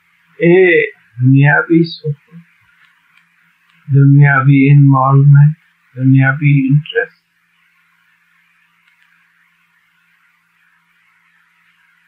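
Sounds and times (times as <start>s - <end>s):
faint low hum and hiss: 0.0s - 12.0s.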